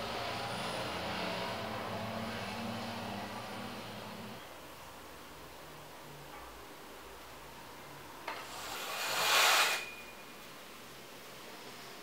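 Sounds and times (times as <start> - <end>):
curtain sliding along rail: 8.3 - 10.2.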